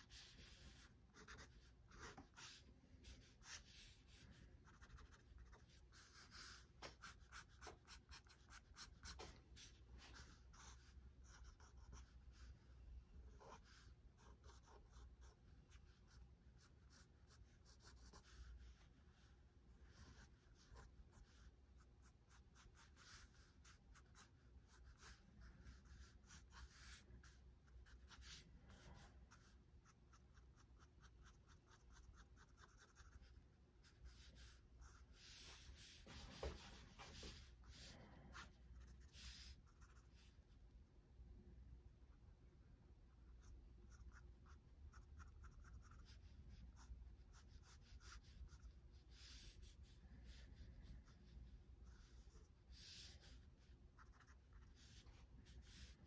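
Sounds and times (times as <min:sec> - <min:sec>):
pen scratching on paper: 0:00.0 - 0:12.5, 0:13.4 - 0:40.4, 0:43.4 - 0:56.0.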